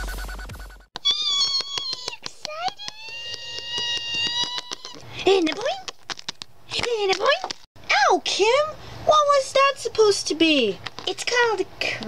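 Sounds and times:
rapid clicks: 0:01.0 - 0:07.7.

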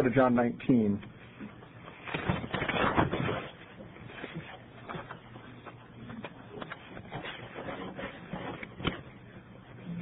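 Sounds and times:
pages rustling: 0:01.9 - 0:09.0.

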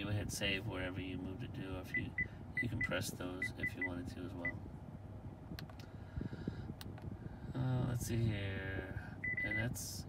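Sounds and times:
low car cabin hum: 0:00.0 - 0:10.0.

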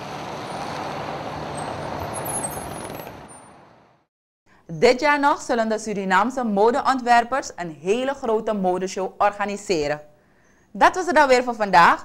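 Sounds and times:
street traffic noise: 0:00.0 - 0:04.1.

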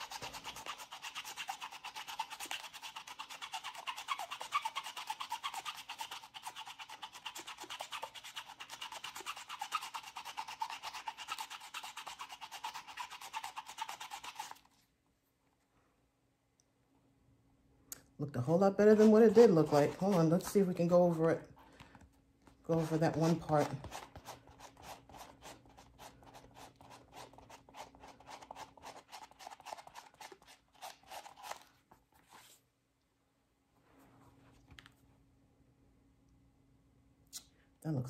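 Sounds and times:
brush scrubbing suede: 0:00.0 - 0:14.8, 0:18.8 - 0:21.3, 0:22.7 - 0:32.6.

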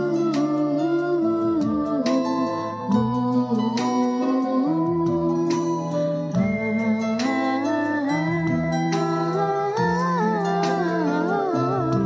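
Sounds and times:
pop backing track: 0:00.0 - 0:12.0
woman singing wordless vocalise: 0:00.0 - 0:12.0.

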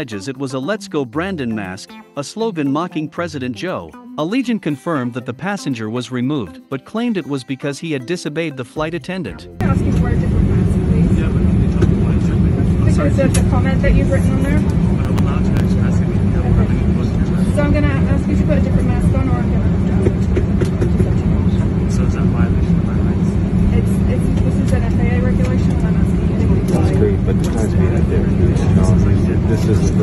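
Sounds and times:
faint unintelligible voices: 0:09.6 - 0:17.6, 0:19.4 - 0:30.0
airliner cabin rumble: 0:09.6 - 0:30.0.

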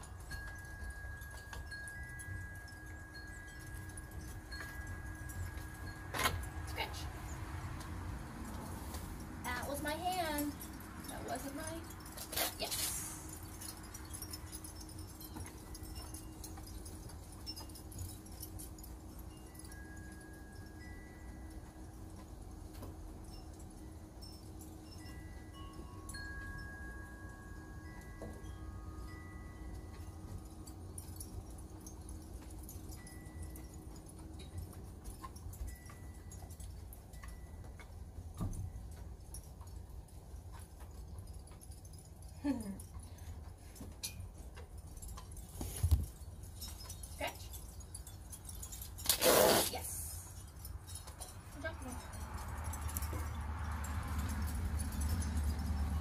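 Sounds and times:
wind chimes ringing: 0:00.0 - 0:56.0.

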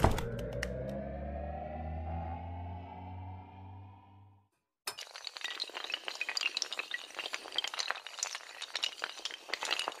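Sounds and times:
small hard pieces clattering: 0:04.9 - 0:10.0.

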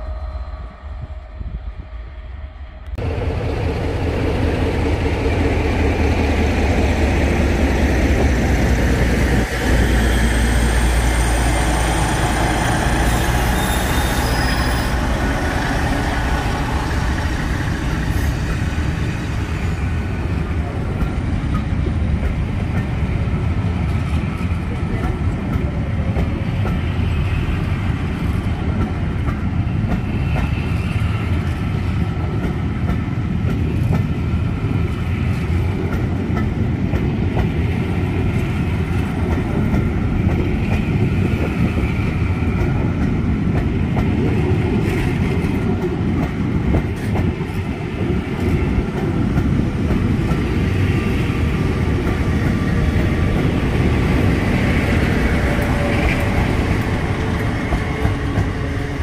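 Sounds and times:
train wheels rumbling on rails: 0:00.0 - 0:59.0.

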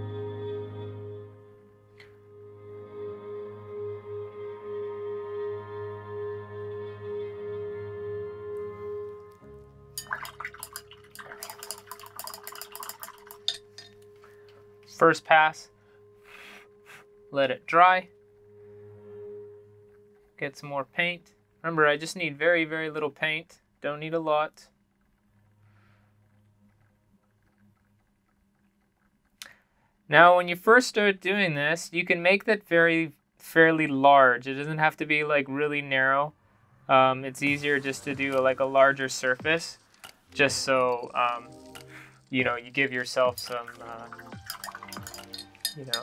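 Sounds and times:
soft ambient music: 0:00.0 - 0:23.1, 0:35.2 - 0:46.0
low steady hum: 0:00.0 - 0:46.0
paintbrush tapping in water pot: 0:10.0 - 0:14.0, 0:43.4 - 0:46.0.

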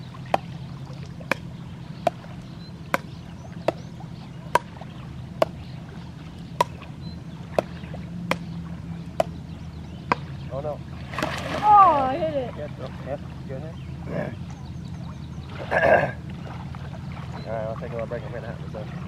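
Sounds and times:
low hum: 0:00.0 - 0:19.0
ball struck with paddles: 0:00.3 - 0:10.4.

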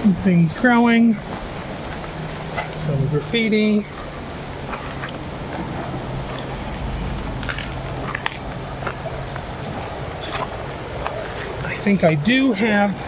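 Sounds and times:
low engine hum: 0:00.0 - 0:12.3
footsteps on leaves and gravel: 0:07.1 - 0:11.6.

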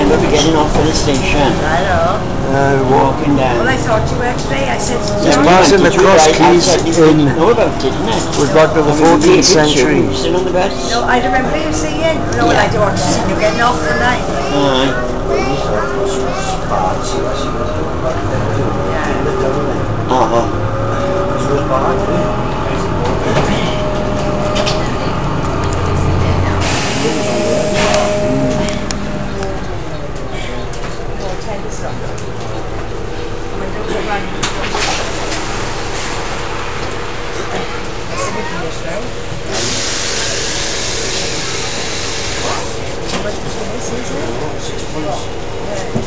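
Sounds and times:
bus engine and road drone: 0:00.0 - 0:46.0
engine whine: 0:00.0 - 0:46.0
air brake hiss: 0:26.6 - 0:28.0, 0:39.5 - 0:42.7.

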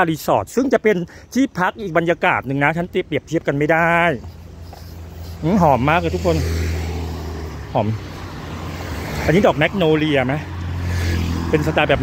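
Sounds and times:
road traffic rumble: 0:00.0 - 0:12.0
motor scooter: 0:10.5 - 0:12.0.

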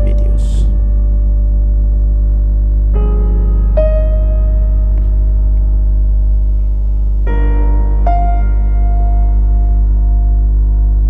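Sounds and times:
held keyboard chord: 0:00.0 - 0:11.0
steady low drone: 0:00.0 - 0:11.0.

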